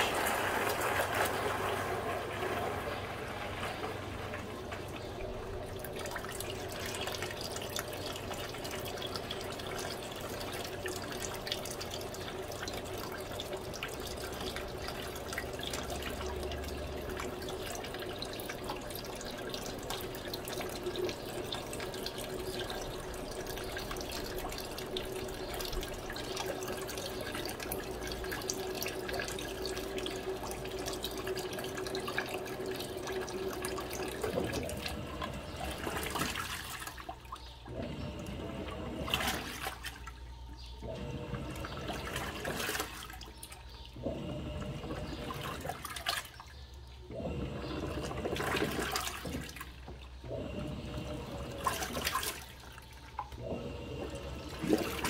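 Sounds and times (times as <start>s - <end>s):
running water filling washing machine: 0.0s - 55.0s
washing machine agitator churning: 0.0s - 55.0s
washing machine hum: 0.0s - 55.0s.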